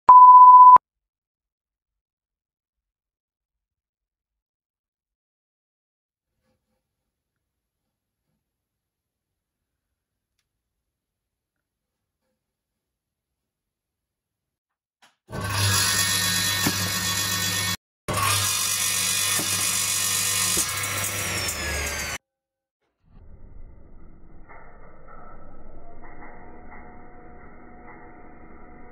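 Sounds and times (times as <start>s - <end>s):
electronic beep: 0.1s - 0.8s
circular saw running: 15.3s - 22.2s.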